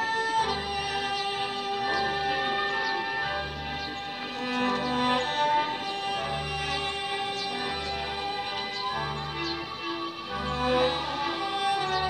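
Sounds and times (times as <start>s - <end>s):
low cellos and double basses: 0.0s - 12.0s
strings holding sustained notes: 0.0s - 12.0s.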